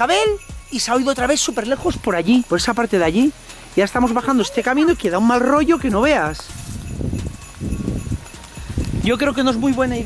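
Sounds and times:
footsteps on rocky path: 0:04.9 - 0:10.0.

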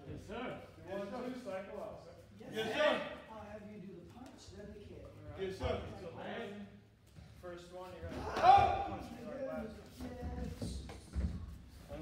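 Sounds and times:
voices in a hall: 0:00.0 - 0:12.0
loud shout: 0:08.1 - 0:09.0.

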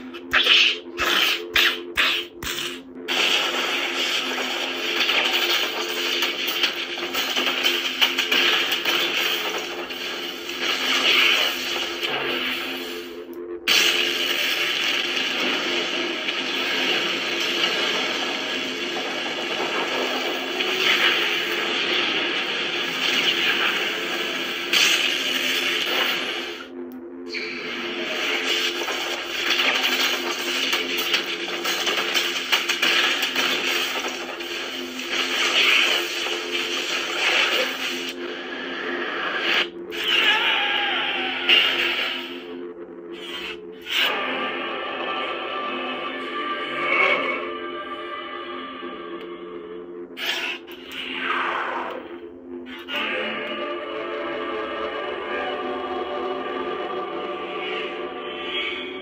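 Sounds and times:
rushing crackling spell effect: 0:00.0 - 0:26.7, 0:27.6 - 0:44.5
lightsaber whirring hum: 0:00.0 - 0:59.0.

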